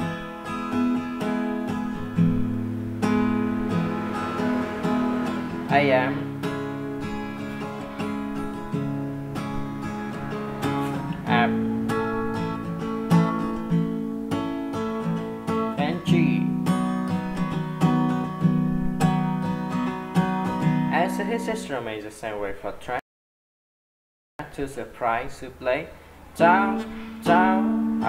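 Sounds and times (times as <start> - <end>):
acoustic guitar strumming chords: 0.0 - 21.8, 26.4 - 28.0.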